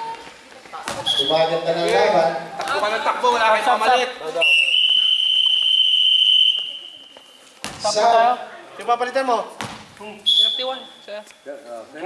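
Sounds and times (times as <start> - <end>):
referee's whistle blast: 1.0 - 1.5, 4.4 - 7.0, 10.2 - 11.1
thump: 7.6 - 7.9, 9.6 - 10.0.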